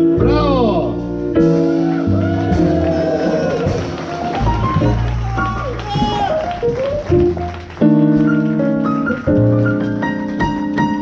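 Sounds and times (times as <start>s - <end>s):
blues band playing: 0.0s - 11.0s
piano: 0.0s - 11.0s.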